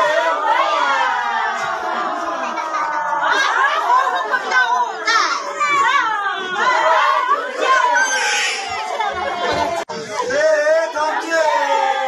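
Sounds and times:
high voices calling and singing: 7.8s - 9.1s.

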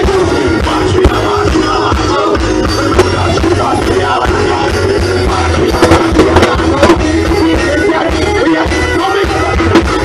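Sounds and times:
reggae band playing live: 0.0s - 10.0s
sharp drum hits: 5.6s - 7.2s.

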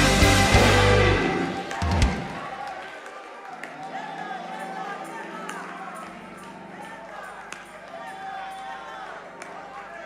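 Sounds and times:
choir singing gospel song: 0.0s - 10.0s.

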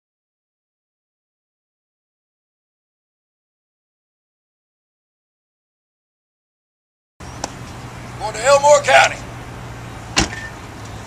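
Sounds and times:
car door slamming: 10.1s - 10.6s.

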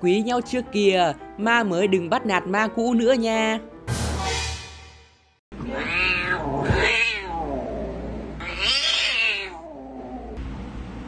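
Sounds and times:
cat meowing: 5.6s - 7.6s, 8.4s - 10.0s.

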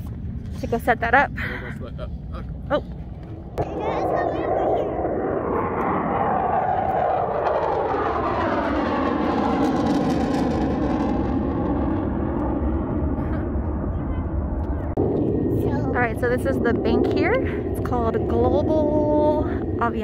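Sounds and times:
jet flying overhead: 2.1s - 20.0s.

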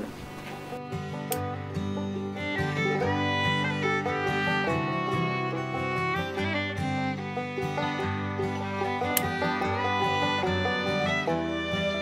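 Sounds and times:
country string music: 0.0s - 12.0s.

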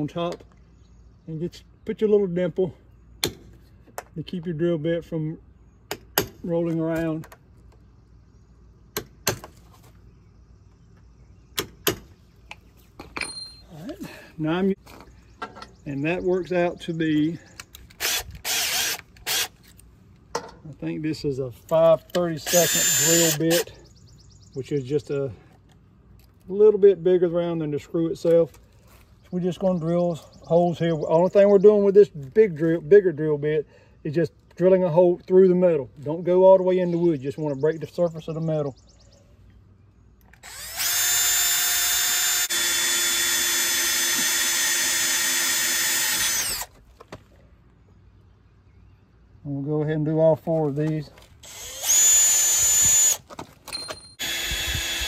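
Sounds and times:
drill chuck ratcheting whir: 17.9s - 19.6s, 22.4s - 23.7s, 40.3s - 46.8s, 51.4s - 53.2s, 54.1s - 55.0s.

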